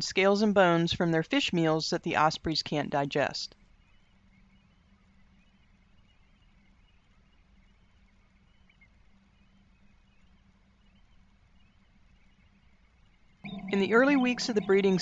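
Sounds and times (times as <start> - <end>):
faint low hum: 0.0 - 15.0
faint high chirps: 13.4 - 15.0.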